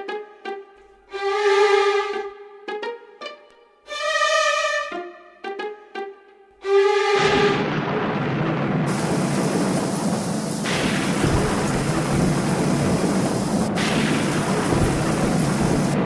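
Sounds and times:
heavy rain: 7.1 - 16.0
rumbling thunder: 7.2 - 16.0.

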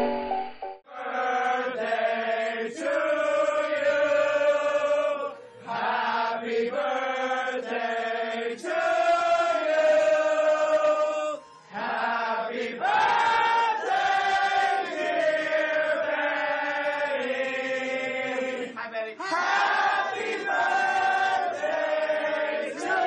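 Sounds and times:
group singing held notes: 0.9 - 23.0.

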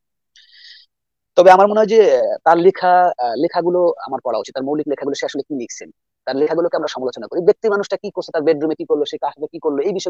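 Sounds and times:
person speaking loudly: 1.4 - 10.0.

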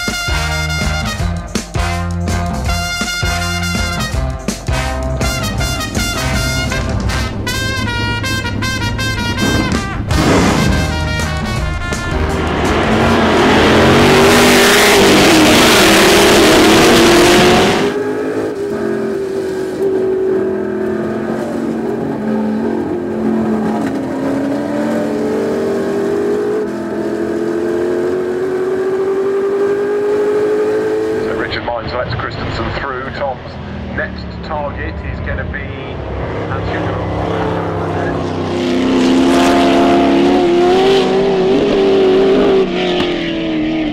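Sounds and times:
swing music with brass: 0.0 - 18.4
racing car engines: 0.0 - 43.9
car engine accelerating: 3.4 - 43.9.

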